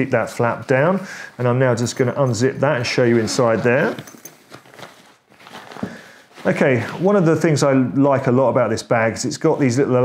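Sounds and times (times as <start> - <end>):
fabric rustling: 0.5 - 7.4
zip being pulled open: 3.0 - 4.1.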